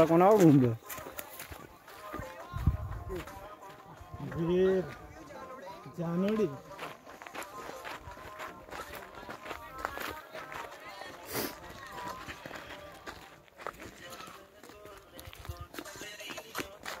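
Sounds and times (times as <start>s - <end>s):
faint voices: 0.0s - 17.0s
footsteps on dirt trail: 0.0s - 17.0s.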